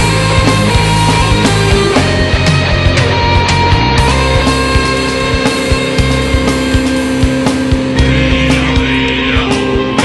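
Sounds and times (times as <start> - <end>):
droning guitar chords: 0.0 - 10.0
steady drum beat: 0.0 - 10.0.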